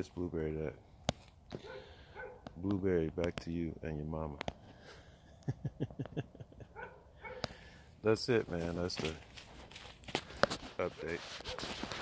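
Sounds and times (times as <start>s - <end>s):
man laughing: 4.8s - 7.1s.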